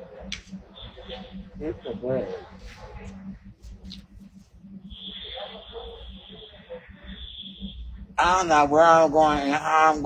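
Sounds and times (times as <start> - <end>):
faint low hum: 0.0 - 10.0
steady high-pitched tone: 0.0 - 10.0.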